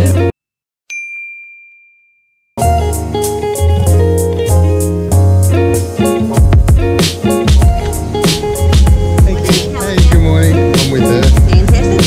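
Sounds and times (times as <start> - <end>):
guitar-led music: 0.0 - 0.3, 2.6 - 12.0
bell-like ding: 0.9 - 2.6.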